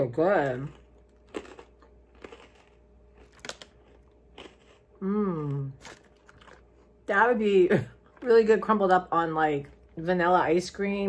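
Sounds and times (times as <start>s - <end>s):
person chewing crunchy food: 0.4s - 7.0s.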